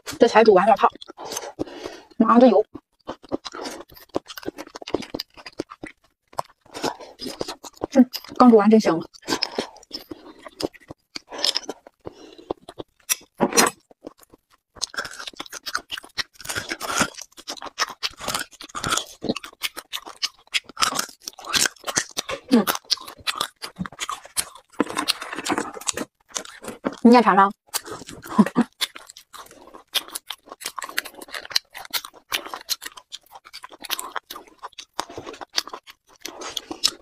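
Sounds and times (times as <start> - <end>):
sucking and chewing marrow: 0.0 - 37.0.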